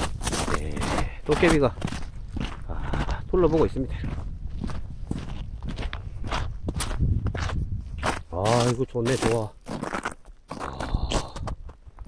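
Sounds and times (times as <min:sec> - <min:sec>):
footsteps crunching on icy snow: 0:00.0 - 0:12.0.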